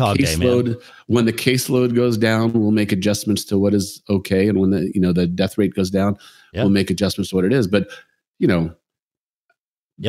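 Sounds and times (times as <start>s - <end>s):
man speaking: 0.0s - 8.8s.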